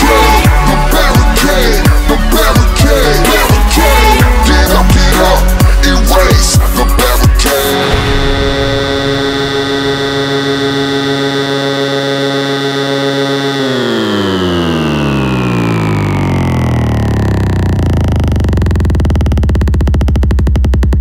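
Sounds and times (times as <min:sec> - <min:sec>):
sustained synthesizer chord sliding down: 0:00.0 - 0:21.0.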